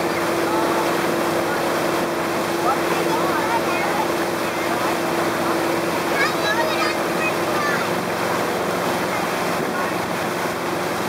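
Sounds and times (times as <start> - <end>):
churning wake rushing: 0.0 - 11.0
motorboat engine hum: 0.0 - 11.0.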